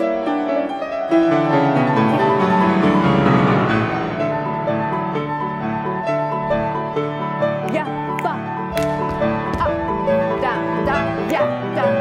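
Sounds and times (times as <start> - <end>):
solo piano piece: 0.0 - 12.0.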